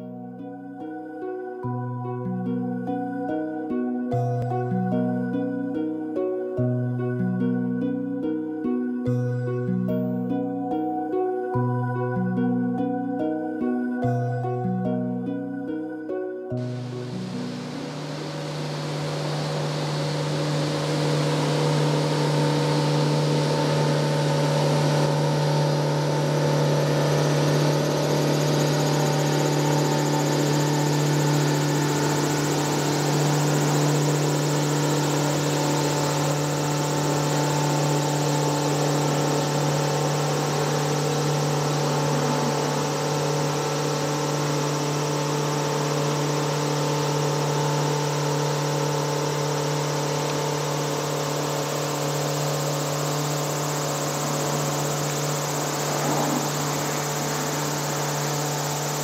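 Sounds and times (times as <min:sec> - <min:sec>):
boat engine droning: 0:00.0 - 0:59.0.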